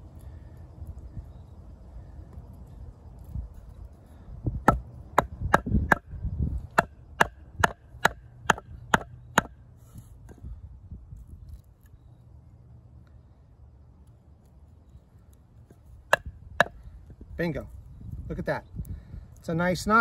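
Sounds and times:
handling of knife and wood: 11.1 - 12.3, 14.0 - 18.3.

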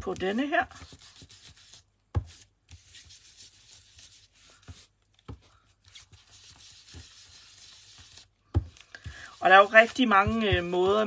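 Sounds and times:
ink applicator rubbing on card: 0.1 - 5.0, 5.8 - 11.0.

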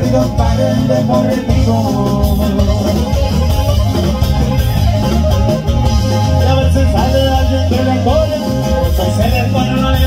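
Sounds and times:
drums: 0.0 - 10.0
guitar: 0.0 - 10.0
sousaphone bass line: 0.0 - 10.0.

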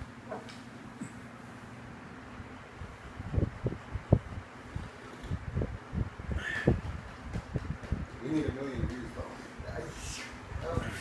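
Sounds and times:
soft low thumps: 3.2 - 9.8.

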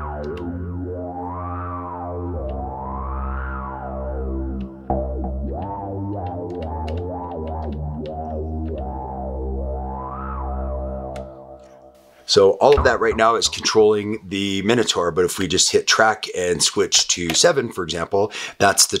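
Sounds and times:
synthesizer bass notes gliding: 0.0 - 12.1, 12.7 - 14.4.

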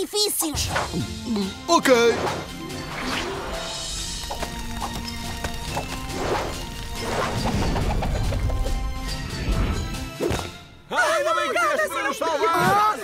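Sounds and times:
cartoon action music: 6.0 - 13.0.

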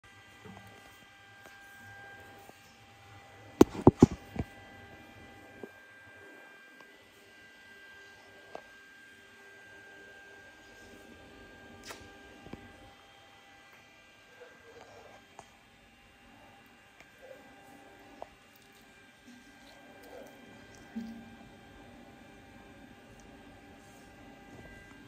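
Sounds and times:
electrical hum with high whine: 0.0 - 25.0.

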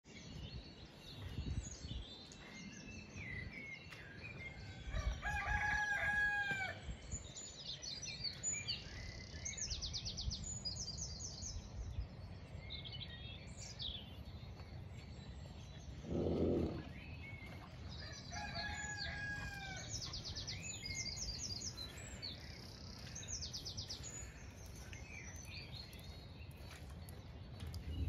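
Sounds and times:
songbirds chirping and trilling: 0.1 - 28.0
long steady bird call: 2.0 - 28.0.

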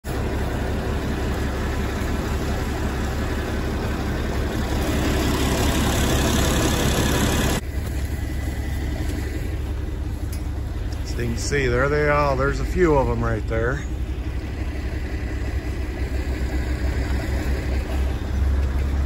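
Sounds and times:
tractor engine idling: 0.0 - 19.0.

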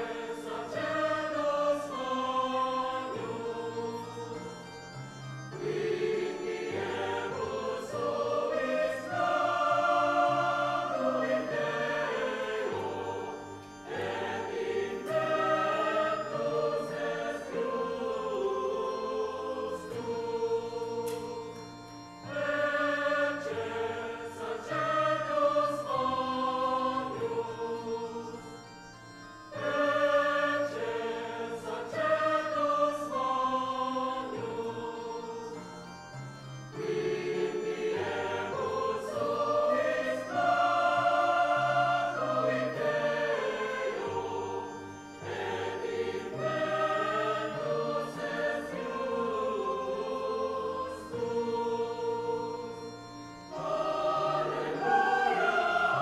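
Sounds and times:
church choir singing a hymn: 0.0 - 56.0.

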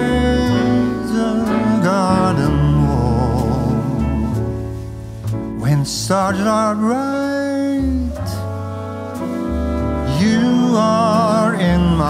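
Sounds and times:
man singing with vibrato: 0.0 - 4.6, 5.6 - 8.6, 10.0 - 12.0
slow jazz ballad: 0.0 - 12.0.

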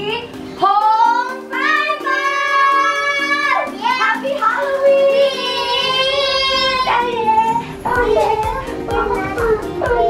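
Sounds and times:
background music: 0.0 - 10.0
child singing: 1.0 - 10.0.

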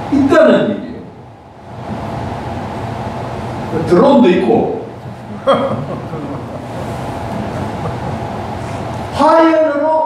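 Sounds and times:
low hum: 1.0 - 9.2.

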